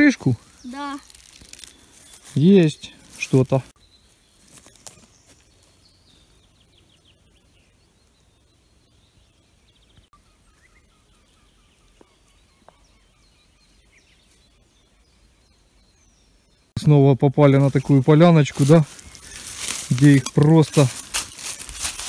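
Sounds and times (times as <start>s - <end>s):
distant birdsong chirps and trills: 0.0s - 22.0s.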